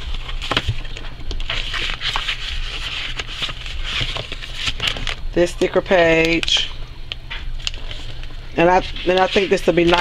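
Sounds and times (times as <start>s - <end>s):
paper sheets rustling: 0.0s - 5.2s, 7.6s - 10.0s
steady low hum: 0.0s - 10.0s.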